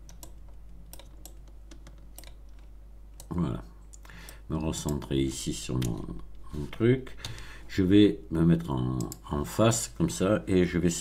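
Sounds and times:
keyboard and mouse clicks: 0:00.0 - 0:06.4
faint low hum: 0:00.0 - 0:11.0.

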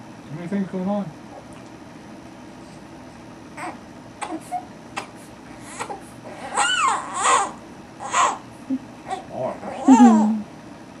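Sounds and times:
baby crying: 0:03.6 - 0:08.4, 0:09.1 - 0:10.4.

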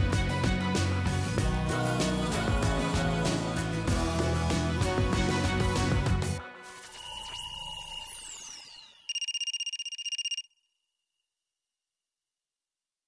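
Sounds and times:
fast-pulsing bright chime: 0:06.9 - 0:10.4.

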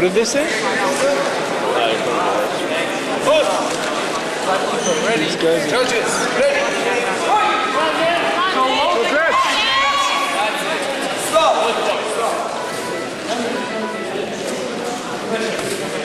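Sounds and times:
hubbub of voices: 0:00.0 - 0:16.0
spectators shouting: 0:07.1 - 0:10.5.

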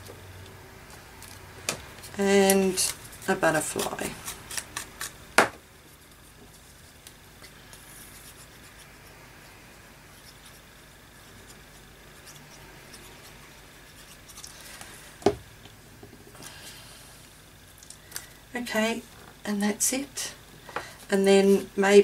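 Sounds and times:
craft tools knocking on table: 0:05.4 - 0:05.6.

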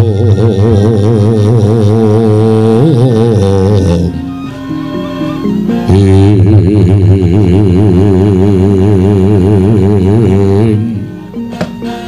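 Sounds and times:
man singing long vibrato note: 0:00.0 - 0:11.4.

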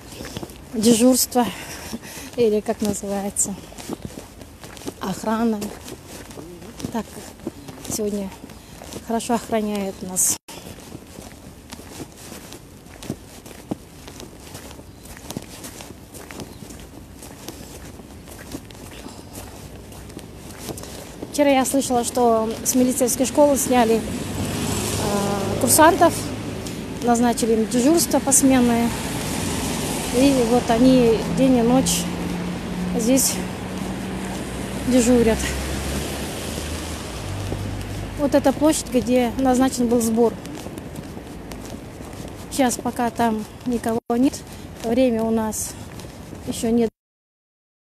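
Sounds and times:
faint outdoor background noise: 0:00.0 - 0:46.9
footsteps on slushy pavement: 0:00.0 - 0:46.9
car passing on wet street: 0:19.1 - 0:43.9, 0:44.5 - 0:46.6.

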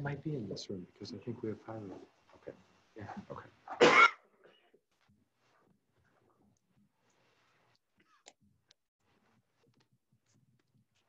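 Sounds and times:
man coughing: 0:03.7 - 0:04.2.

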